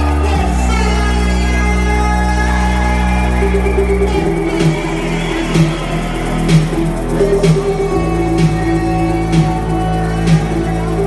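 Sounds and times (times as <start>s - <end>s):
techno synth tones: 0.0s - 11.0s.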